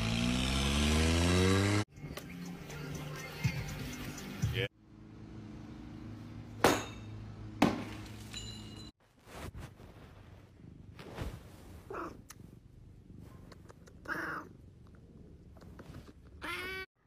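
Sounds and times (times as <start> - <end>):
cat meowing: 14.0 - 14.5.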